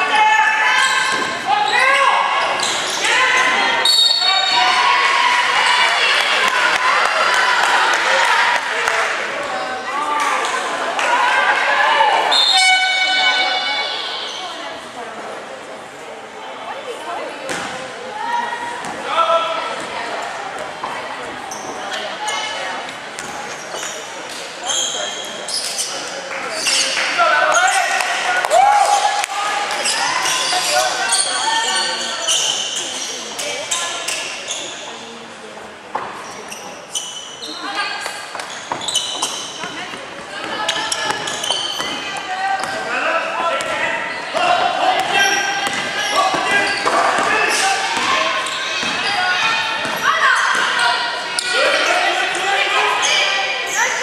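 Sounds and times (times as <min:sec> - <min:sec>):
basketball bouncing on hardwood: 0:45.0 - 0:45.9.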